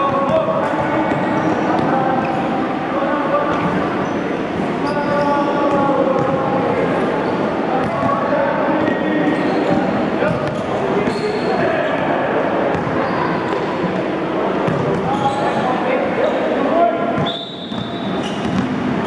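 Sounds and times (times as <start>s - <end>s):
basketballs bouncing on gym floor: 0.0s - 2.0s, 9.7s - 11.2s, 12.7s - 13.6s, 14.6s - 15.2s, 17.2s - 18.8s
chatter of kids' voices: 0.0s - 17.2s.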